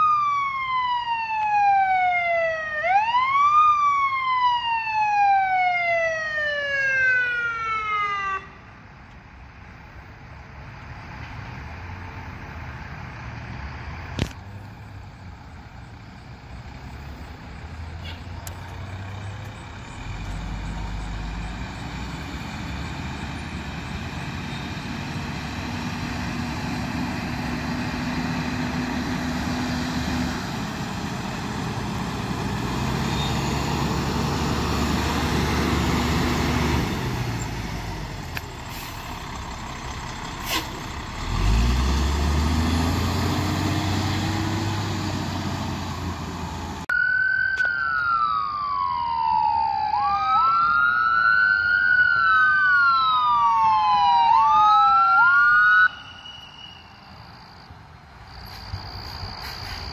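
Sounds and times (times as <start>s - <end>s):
diesel truck engine passing: 9.6s - 46.9s.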